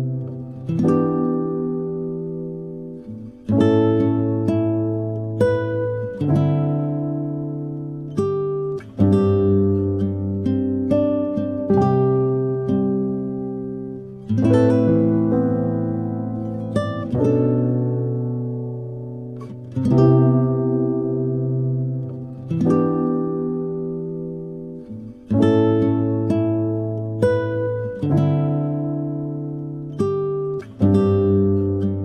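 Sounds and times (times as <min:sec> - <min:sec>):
plucked string chords: 0:00.0 - 0:32.0.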